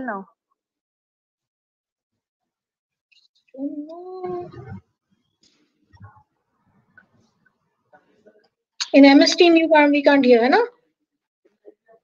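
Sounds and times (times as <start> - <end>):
faint scattered noises: 3.1 - 9.4.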